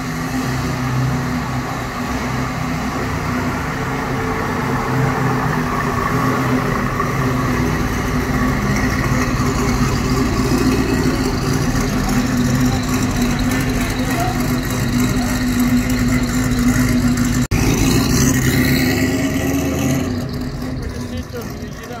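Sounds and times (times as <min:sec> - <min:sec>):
car engine running at low revs: 0:00.0 - 0:22.0.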